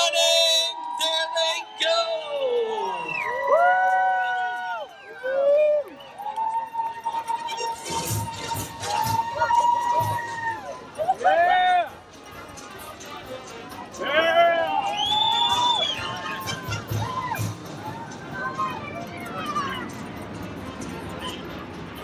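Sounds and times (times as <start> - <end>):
crowd cheering and whooping: 0.0 - 11.9, 14.1 - 19.0.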